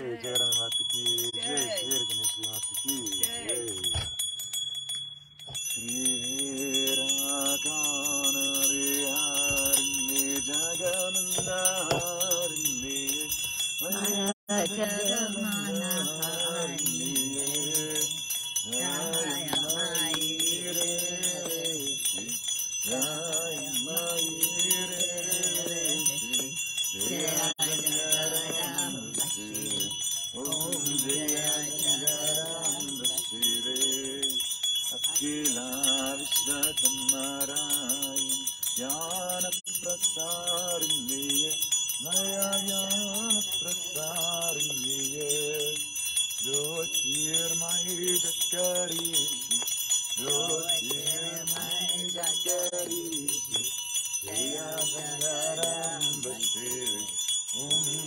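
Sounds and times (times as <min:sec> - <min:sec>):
voices chanting: 0:00.0 - 0:03.9, 0:05.8 - 0:58.0
hand bell ringing: 0:00.0 - 0:58.0.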